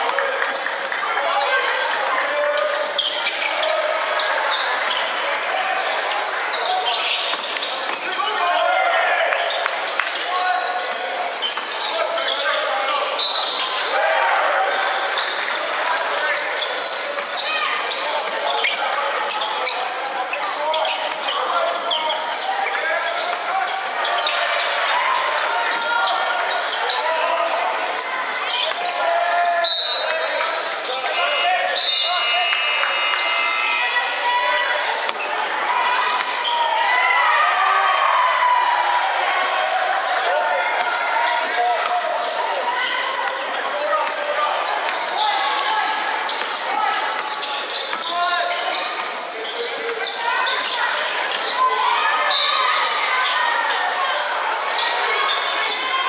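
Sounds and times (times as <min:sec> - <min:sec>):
voices in gym: 0:00.0 - 0:56.0
shoe squeaks: 0:02.8 - 0:08.6, 0:09.4 - 0:13.9, 0:16.2 - 0:30.2, 0:45.1 - 0:53.4, 0:54.0 - 0:56.0.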